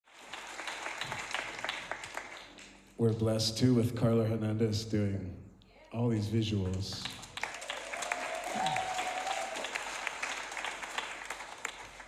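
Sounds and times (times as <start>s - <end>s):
audience applause: 0.1s - 2.8s, 6.9s - 12.0s.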